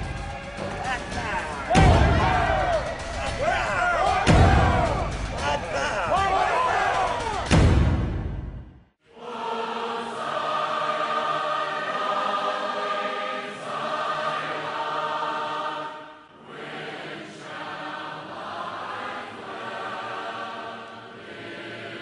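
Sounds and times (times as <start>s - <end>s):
choir singing held chords: 0.0s - 8.2s, 9.0s - 22.0s.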